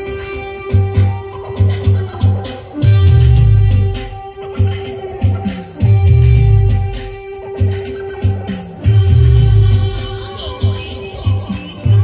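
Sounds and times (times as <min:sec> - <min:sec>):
heavy bass beats: 0:00.0 - 0:12.0
live band music through speakers: 0:00.0 - 0:12.0.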